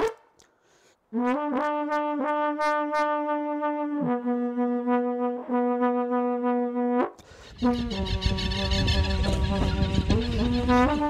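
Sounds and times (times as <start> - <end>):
solo horn melody: 1.1 - 11.0.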